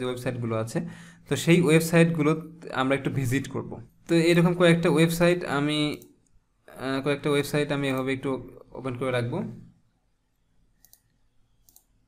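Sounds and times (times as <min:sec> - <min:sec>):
computer mouse clicks: 0:10.8 - 0:12.0.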